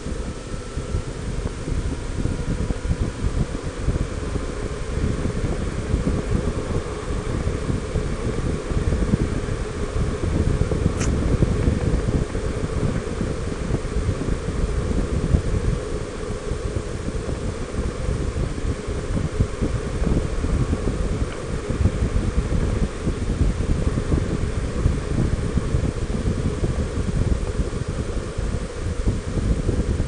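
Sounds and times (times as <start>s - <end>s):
motorcycle and road noise: 0.0s - 30.0s
wind buffeting microphone: 0.0s - 30.0s.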